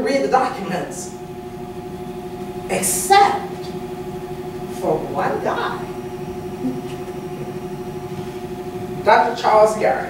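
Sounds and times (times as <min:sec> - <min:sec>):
machine hum: 0:00.0 - 0:10.0.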